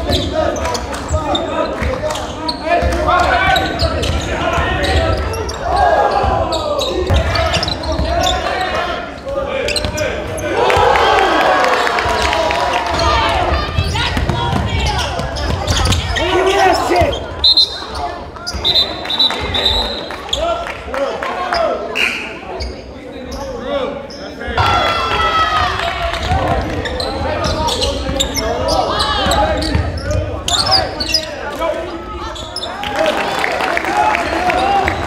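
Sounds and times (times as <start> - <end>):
indistinct voices echoing: 0.0 - 35.0.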